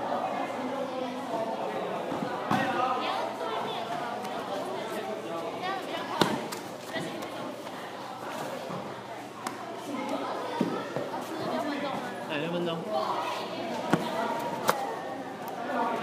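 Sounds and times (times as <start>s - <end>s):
teenagers chattering: 0.0s - 16.0s.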